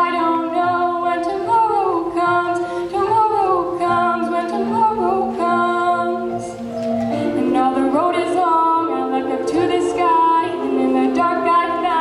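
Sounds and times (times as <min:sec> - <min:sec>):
a cappella choir: 0:00.0 - 0:12.0.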